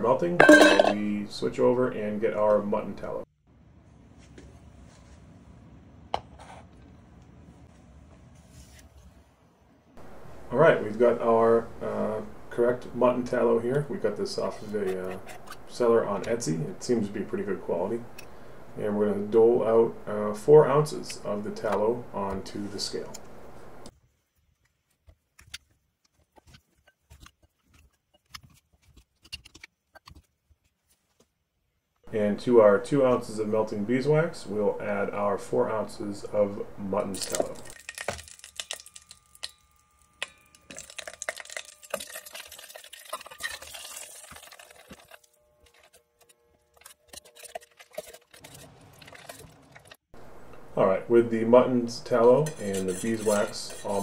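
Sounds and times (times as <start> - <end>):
clicks and knocks in bowl: 0.4 - 1.0
liquid stirring: 0.4 - 1.0, 37.0 - 50.7, 52.1 - 54.0
metal spoon scraping glass jar: 0.4 - 1.0, 52.2 - 54.0
steady background hiss: 10.0 - 23.9.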